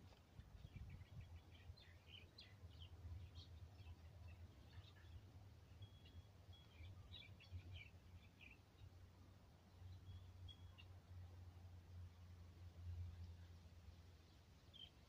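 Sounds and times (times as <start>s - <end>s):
low steady rumble: 0.0s - 15.0s
bird chirps: 0.6s - 8.9s.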